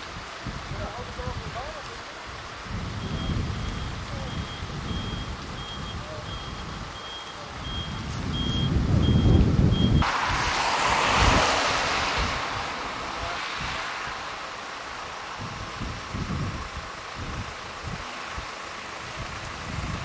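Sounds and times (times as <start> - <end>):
rush of wind noise: 0.0 - 1.6, 2.3 - 20.0
wind rumble on microphone: 0.0 - 20.0
reversing alarm beeping: 3.0 - 10.0.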